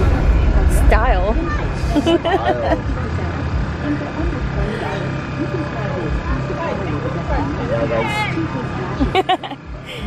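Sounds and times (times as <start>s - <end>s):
people chatting and laughing: 0.0s - 10.0s
steady low hum: 0.0s - 10.0s.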